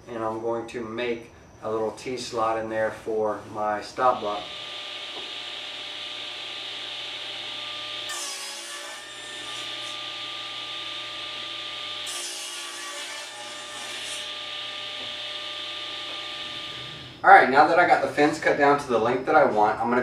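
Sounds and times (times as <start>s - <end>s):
table saw cutting wood: 4.1s - 17.2s.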